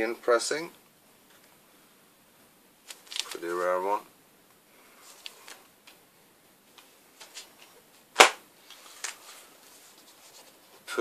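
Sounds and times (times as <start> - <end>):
record sleeves rustling and tapping: 2.8 - 3.7, 5.1 - 6.0, 6.7 - 11.0
record jacket slapped down: 8.2 - 8.4.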